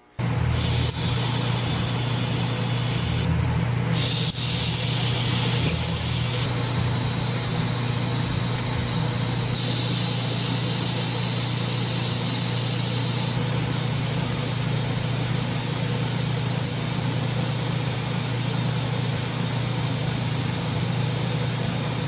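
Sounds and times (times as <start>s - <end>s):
faint high whine: 0.0s - 16.2s
welding arc buzzing: 0.0s - 22.0s.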